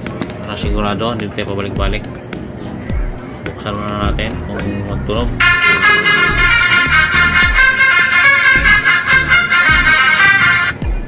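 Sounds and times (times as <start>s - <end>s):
tinny phone power-on jingle: 5.4s - 10.7s.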